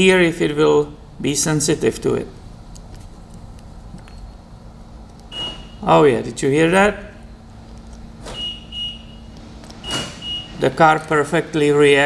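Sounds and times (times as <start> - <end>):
low steady hum: 0.0 - 12.0
short high-pitched car beeps: 5.3 - 5.8, 8.3 - 9.3.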